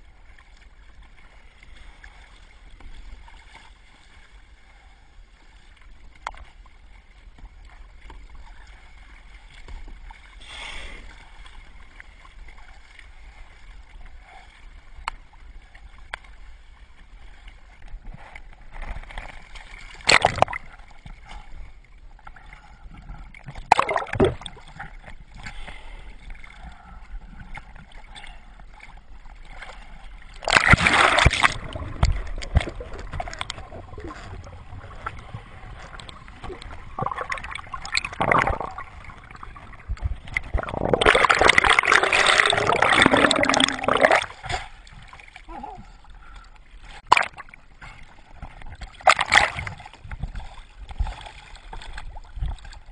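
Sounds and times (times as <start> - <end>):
water lapping around kayak: 0.0 - 52.9
rush of water: 7.4 - 21.6, 23.4 - 26.7, 29.4 - 46.4, 47.0 - 52.9
sharp water splashes: 19.6 - 20.8, 23.6 - 24.7, 30.3 - 34.1, 36.0 - 45.2, 47.0 - 47.6, 48.8 - 50.0.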